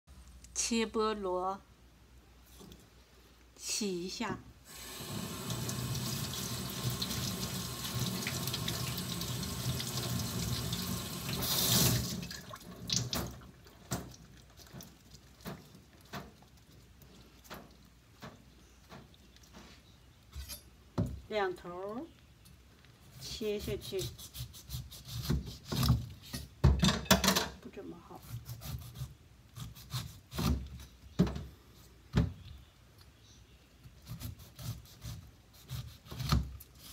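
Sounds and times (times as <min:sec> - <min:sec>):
tap water splashing in sink: 0:05.4 - 0:16.3
knife sawing through pineapple skin: 0:23.2 - 0:26.0, 0:28.2 - 0:30.6, 0:34.0 - 0:36.9.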